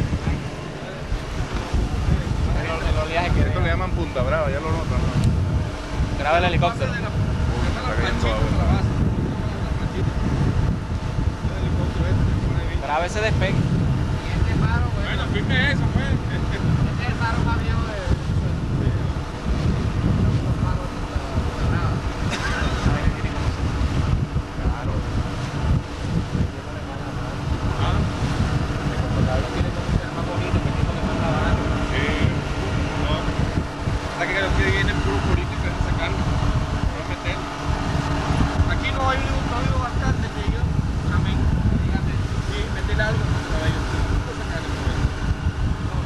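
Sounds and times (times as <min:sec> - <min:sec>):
boat engine humming: 0:00.0 - 0:46.0
wind buffeting microphone: 0:00.0 - 0:46.0.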